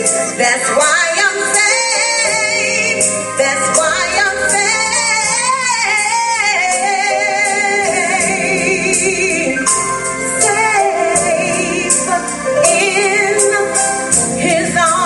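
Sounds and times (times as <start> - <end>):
woman singing gospel: 0.0 - 15.0
steady held tones: 0.8 - 14.1.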